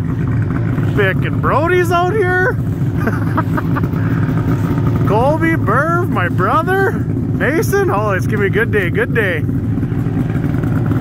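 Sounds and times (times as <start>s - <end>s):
snowmobile engines idling: 0.0s - 11.0s.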